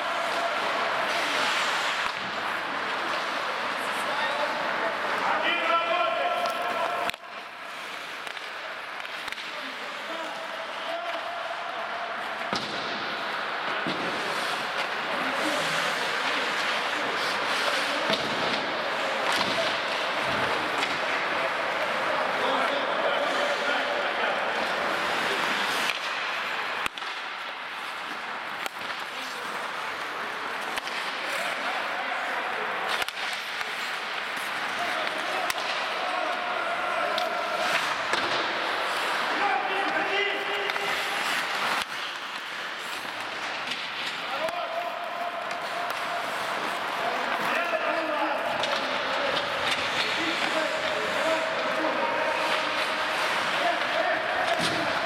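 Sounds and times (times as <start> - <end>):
players shouting: 0.0 - 9.3, 9.9 - 26.9, 30.6 - 55.0
skates scraping on ice: 0.0 - 55.0
sticks and puck clacking on boards: 0.0 - 55.0.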